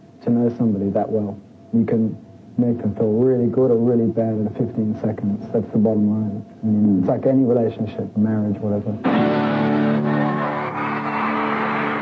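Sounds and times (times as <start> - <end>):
live rock band holding a chord: 9.0 - 10.8.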